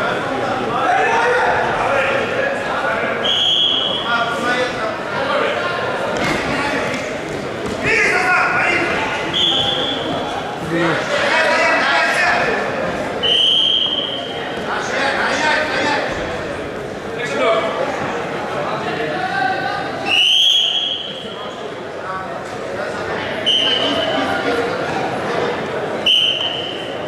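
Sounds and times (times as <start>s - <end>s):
voices in a large hall: 0.0s - 27.0s
referee's whistle blasts: 3.2s - 4.1s, 9.3s - 10.1s, 13.2s - 14.4s, 20.1s - 21.3s, 23.4s - 24.1s, 26.0s - 27.0s.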